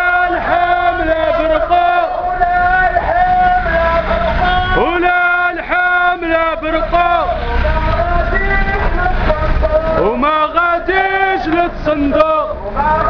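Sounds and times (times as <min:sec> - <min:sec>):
men chanting slogans: 0:00.0 - 0:13.0.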